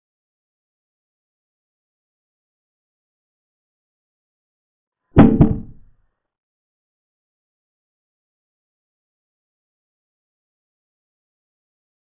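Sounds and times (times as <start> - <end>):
quick wooden knocks: 5.2 - 5.9.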